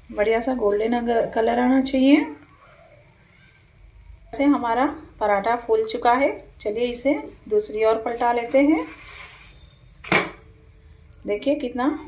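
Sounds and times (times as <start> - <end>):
flatbread slapping on a pan: 8.1 - 10.4.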